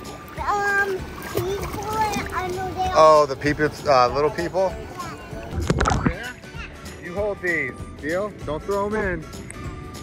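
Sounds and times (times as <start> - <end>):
water splashing in a pool: 0.0 - 7.2.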